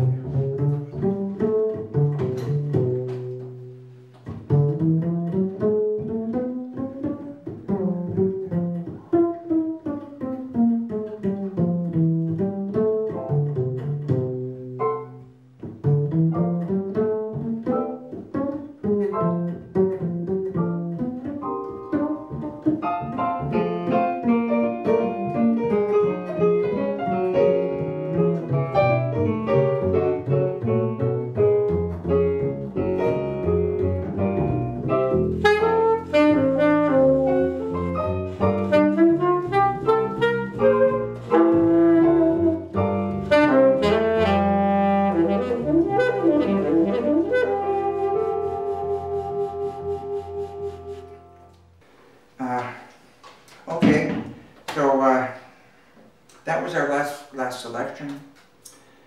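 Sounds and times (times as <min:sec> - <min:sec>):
plucked upright bass: 0:00.0 - 0:51.8
digital piano: 0:14.8 - 0:51.8
saxophone: 0:20.9 - 0:51.6.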